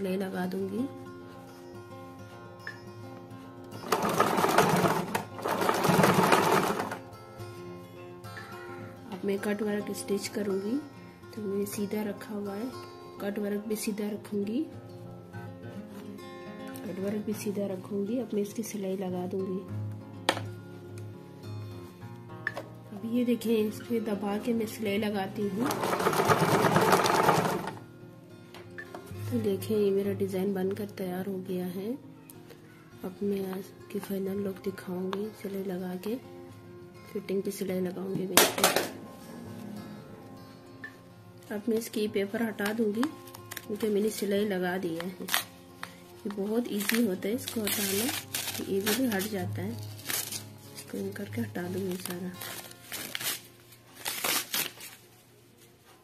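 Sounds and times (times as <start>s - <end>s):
sewing machine stitching: 3.8s - 7.0s, 25.7s - 27.8s.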